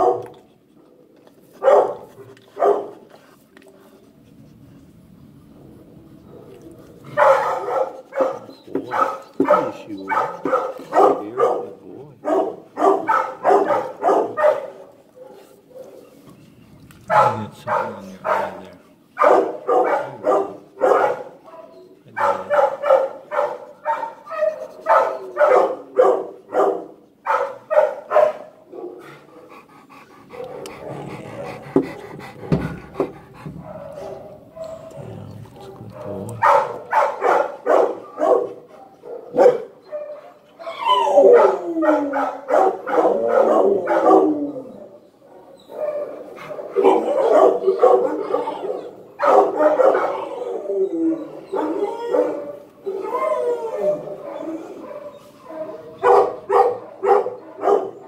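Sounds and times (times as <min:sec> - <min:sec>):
dog barking: 0:00.0 - 0:00.3, 0:01.6 - 0:03.0, 0:06.3 - 0:16.0, 0:17.1 - 0:29.0, 0:30.4 - 0:31.2, 0:33.6 - 0:40.4, 0:41.2 - 0:44.4, 0:45.3 - 0:50.4, 0:53.9 - 0:58.0.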